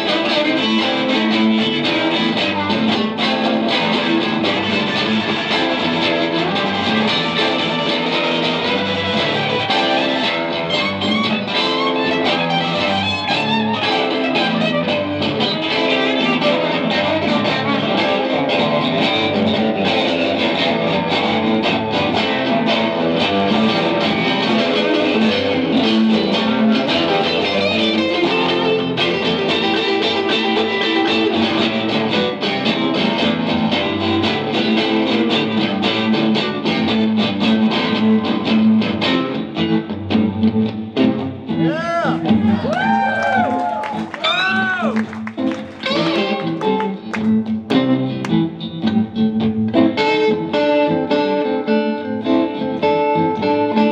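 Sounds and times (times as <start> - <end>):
guitar duet: 0.0 - 53.9.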